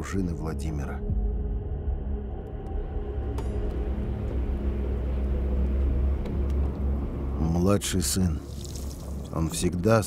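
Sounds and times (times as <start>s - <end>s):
low rumbling drone: 0.0s - 9.9s.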